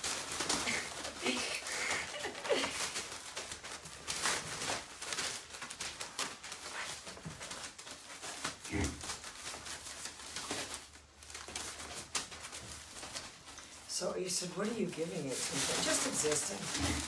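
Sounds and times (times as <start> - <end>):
puppies scuffling: 0.0 - 17.0.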